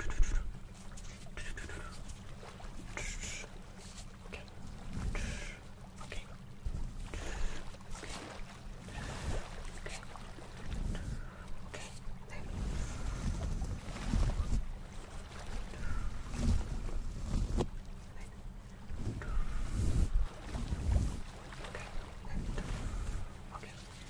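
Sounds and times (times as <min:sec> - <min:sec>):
dull low rumbles: 0:15.6 - 0:21.3.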